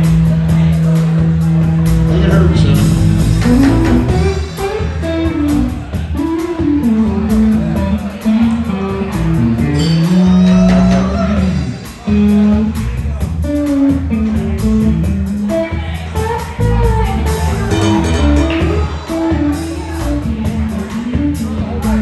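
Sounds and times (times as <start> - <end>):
bass guitar: 0.0 - 22.0
drums: 0.0 - 22.0
electric guitar lead: 0.0 - 22.0.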